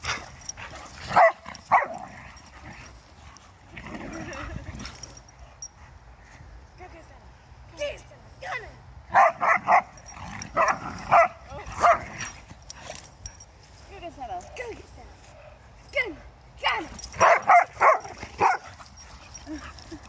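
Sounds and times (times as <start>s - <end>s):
dogs barking: 1.1s - 2.2s, 9.1s - 12.3s, 17.0s - 18.8s.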